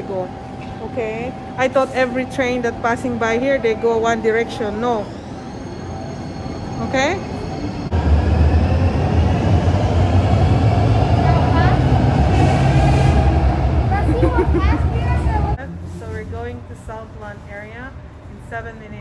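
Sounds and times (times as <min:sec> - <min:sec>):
train rumble: 0:00.0 - 0:19.0.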